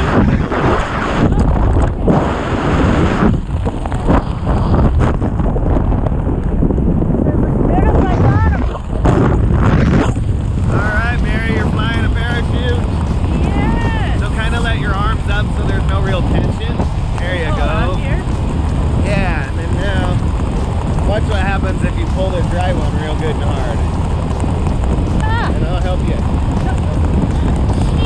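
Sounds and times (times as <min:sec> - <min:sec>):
heavy wind buffeting microphone: 0:00.0 - 0:28.0
voices talking: 0:07.3 - 0:28.0.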